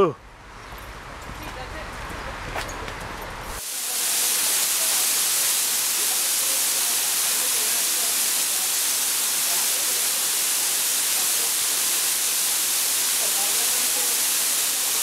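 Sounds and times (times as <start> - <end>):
waterfall rushing onto rocks: 3.6 - 15.0.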